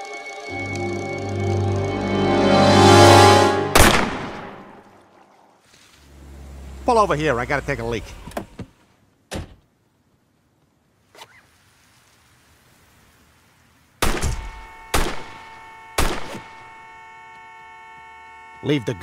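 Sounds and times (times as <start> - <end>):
car horn sounding steadily: 0.5 - 4.8, 14.6 - 19.0
gunshots: 3.7 - 4.8, 14.0 - 16.7.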